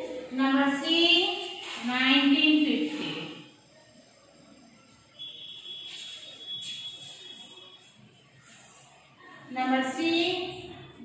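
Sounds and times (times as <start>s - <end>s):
steady high-pitched tone: 3.4s - 10.0s
faint scratchy strokes: 5.9s - 9.2s.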